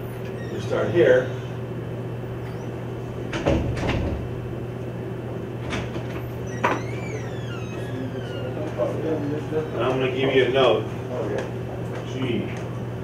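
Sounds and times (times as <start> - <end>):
steady low hum: 0.0 - 13.0
marker squeak: 6.4 - 8.6.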